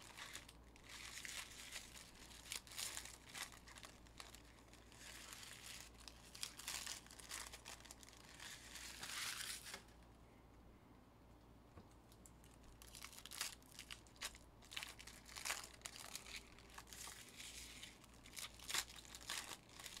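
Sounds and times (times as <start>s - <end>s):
plastic wrappers crinkling and tearing: 0.0s - 9.9s, 12.2s - 20.0s.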